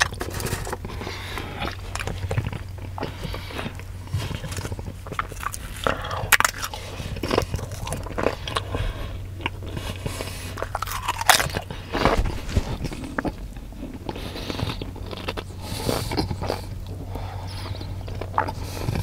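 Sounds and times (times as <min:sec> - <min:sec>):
tortilla chips crunching: 0:00.0 - 0:19.0.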